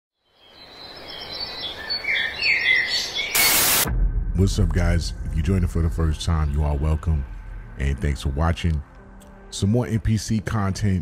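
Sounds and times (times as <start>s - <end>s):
birds chirping: 0.2s - 3.9s
loud burst of noise: 3.3s - 4.0s.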